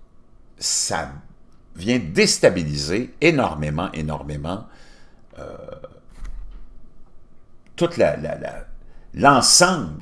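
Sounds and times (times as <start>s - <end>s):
man's croaky hesitation sound: 5.3s - 6.2s.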